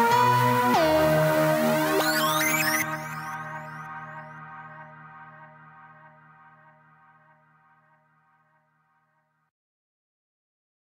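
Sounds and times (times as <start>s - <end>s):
held synthesizer chord: 0.0s - 8.6s.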